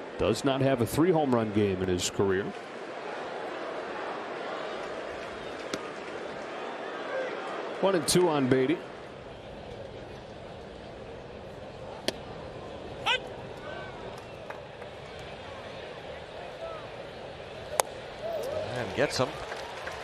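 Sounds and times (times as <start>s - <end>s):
crowd murmur: 0.8s - 20.0s
baseball popping into mitt: 12.0s - 12.2s.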